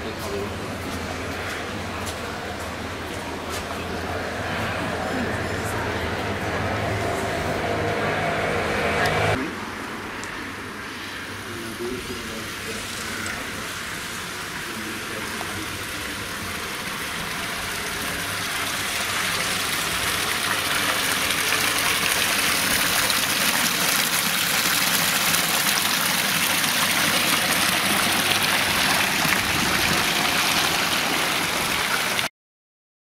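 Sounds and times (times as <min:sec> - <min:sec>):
fountain water splashing into basin: 0:12.0 - 0:32.3.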